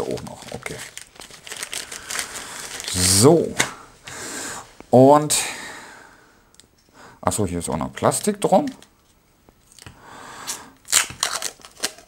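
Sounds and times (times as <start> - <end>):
plastic wrapping crinkling: 0.0 - 3.3, 10.8 - 12.0.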